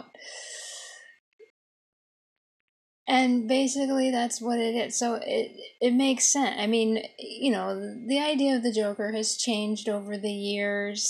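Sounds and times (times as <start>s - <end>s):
woman gasping breath: 0.2s - 1.1s.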